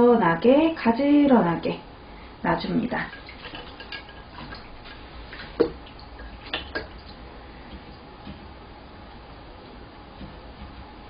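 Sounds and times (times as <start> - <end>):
water drips: 3.0 - 8.0.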